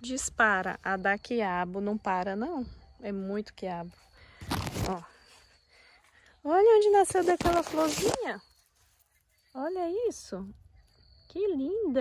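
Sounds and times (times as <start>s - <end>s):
faint high-pitched tone: 0.0s - 12.0s
leaves rustling against phone: 3.9s - 10.5s.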